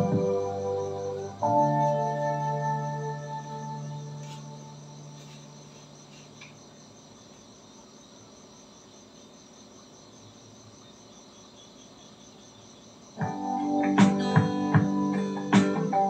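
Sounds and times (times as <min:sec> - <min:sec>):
background music note: 0:00.0 - 0:05.3
crickets trilling: 0:00.0 - 0:16.0
low hiss: 0:00.0 - 0:16.0.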